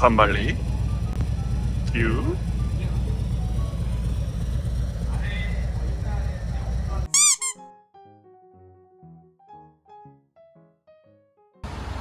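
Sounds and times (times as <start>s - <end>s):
quiet keyboard music: 0.0s - 4.4s
squeaky high chirps: 7.1s - 7.6s.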